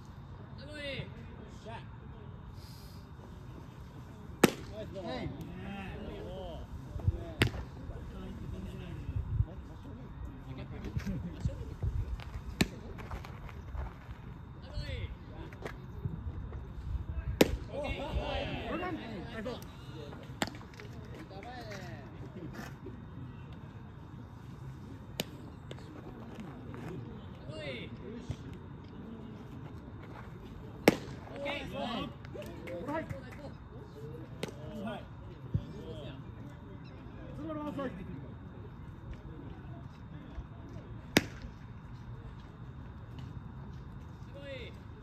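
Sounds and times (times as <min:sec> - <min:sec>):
baseball bat cracks: 0:04.4 - 0:04.8, 0:30.8 - 0:31.2, 0:41.1 - 0:41.5
wind rumble on microphone: 0:08.4 - 0:09.8, 0:10.7 - 0:12.6.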